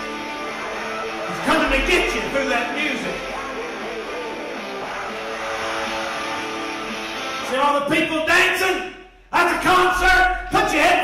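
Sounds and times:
guitar chords: 0.0s - 7.9s
live rock music: 0.0s - 8.3s.

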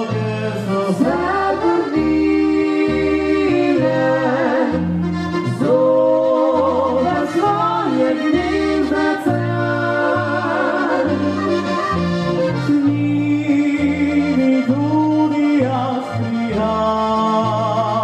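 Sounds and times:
accordion melody: 0.0s - 18.0s
bass line: 0.0s - 18.0s.

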